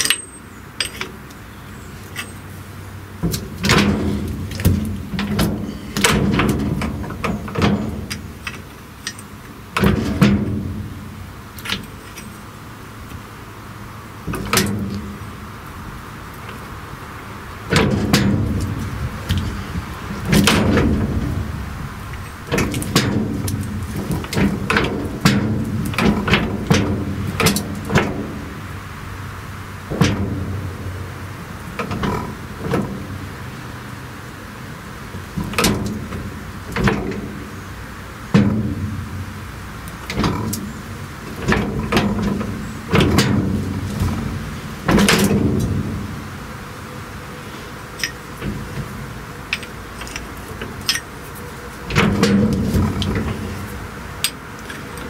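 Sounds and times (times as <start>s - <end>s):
wrench clanking on metal: 0.0s - 1.3s, 2.1s - 2.5s, 3.2s - 10.8s, 11.6s - 12.4s, 22.1s - 28.4s, 39.9s - 44.3s, 44.9s - 46.0s, 47.9s - 55.0s.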